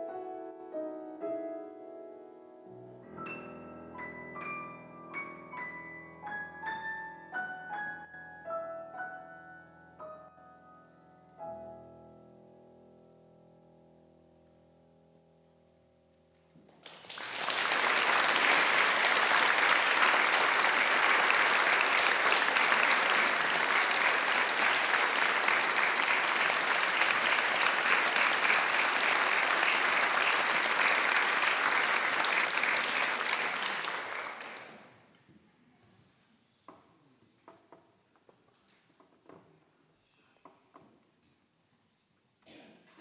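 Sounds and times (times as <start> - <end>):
audience applauding: 16.7 - 35.1.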